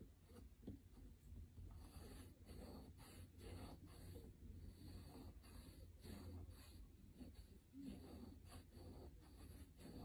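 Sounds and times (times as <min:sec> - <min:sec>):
chalk scratching: 0:00.0 - 0:10.0
low room hum: 0:00.0 - 0:10.0.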